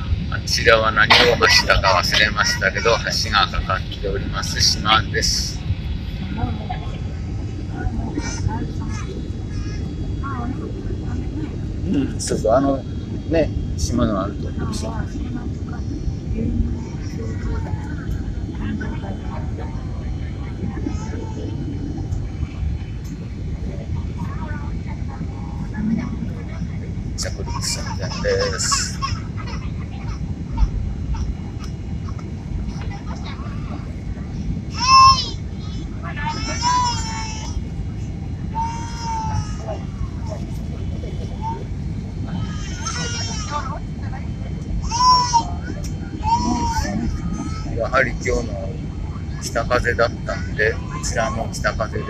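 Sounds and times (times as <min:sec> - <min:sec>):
airliner cabin rumble: 0:00.0 - 0:52.0
faint voices: 0:00.0 - 0:52.0.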